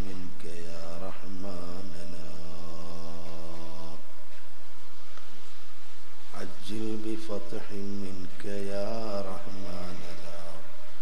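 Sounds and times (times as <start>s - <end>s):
man chanting melodic recitation: 0.0s - 4.5s, 6.3s - 11.0s.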